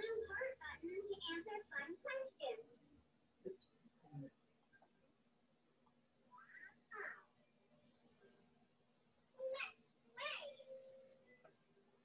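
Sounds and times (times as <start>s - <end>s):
faint pitched vocal calls: 6.3s - 7.3s.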